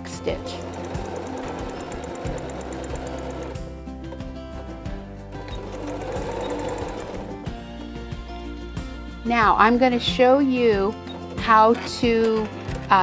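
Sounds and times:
sewing machine stitching: 0.2s - 3.6s, 5.4s - 7.5s, 11.0s - 13.0s.

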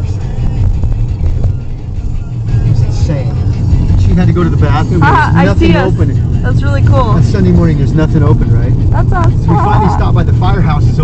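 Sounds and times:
road and engine rumble in car cabin: 0.0s - 11.0s.

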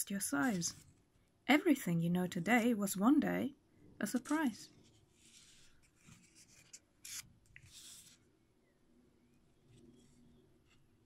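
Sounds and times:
paper page turning: 4.1s - 8.2s.

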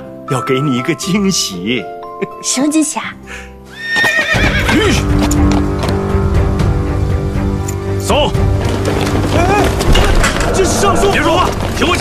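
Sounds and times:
dramatic film music: 0.0s - 12.0s
horse whinnying: 3.7s - 4.9s, 9.3s - 11.6s.

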